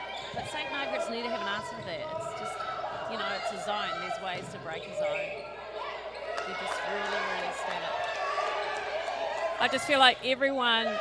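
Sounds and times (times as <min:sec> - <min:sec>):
sports shoes squeaking on wooden court: 0:00.0 - 0:05.8
players and spectators calling out: 0:00.0 - 0:11.0.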